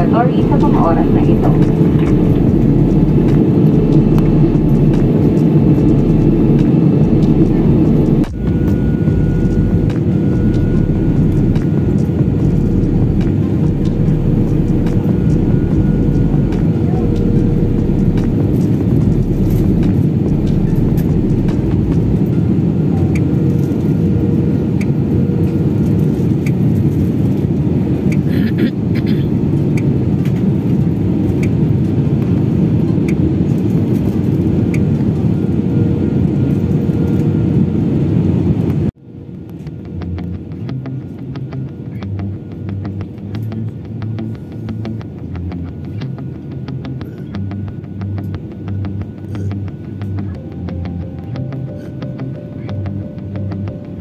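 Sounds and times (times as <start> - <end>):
airliner cabin engine drone: 0.0 - 54.0.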